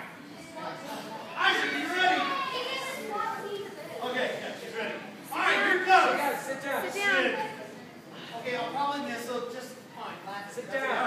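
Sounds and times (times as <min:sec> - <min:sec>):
children talking at once: 0:00.0 - 0:04.1.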